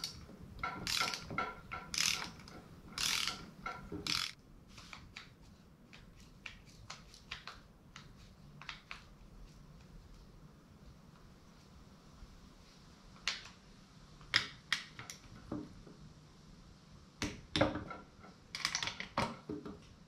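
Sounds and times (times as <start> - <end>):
torque wrench ratcheting clicks: 0.8 - 4.4.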